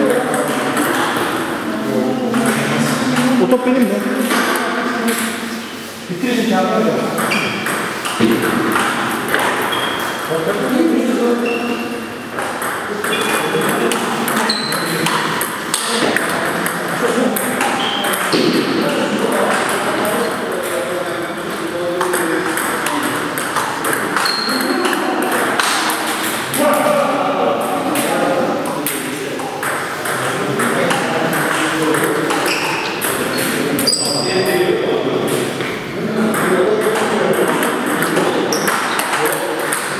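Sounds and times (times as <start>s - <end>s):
voices talking: 0.0s - 39.9s.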